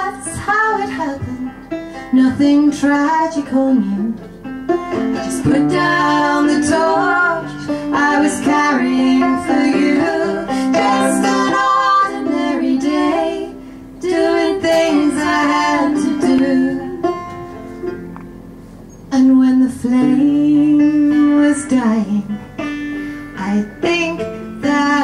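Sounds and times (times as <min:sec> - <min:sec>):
woman singing: 0:00.0 - 0:04.3, 0:05.2 - 0:17.3, 0:19.1 - 0:22.4, 0:23.4 - 0:25.0
plucked banjo: 0:00.0 - 0:25.0.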